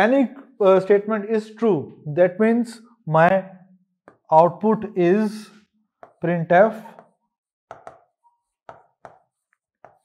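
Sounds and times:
marker tapping on whiteboard: 0:04.1 - 0:04.3, 0:06.0 - 0:10.0.

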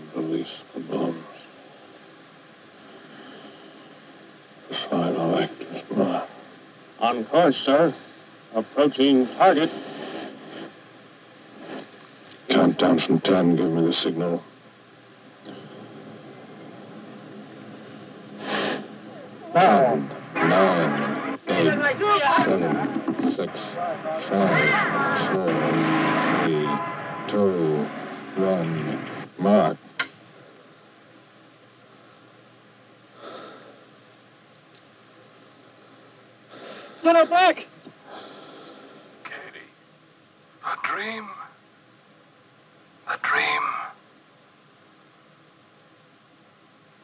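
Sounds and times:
radio static hiss: 0:00.0 - 0:47.0.

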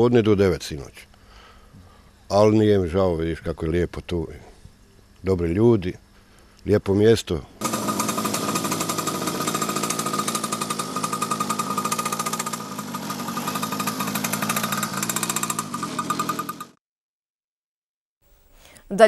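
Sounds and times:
motorcycle engine running: 0:07.6 - 0:16.8.

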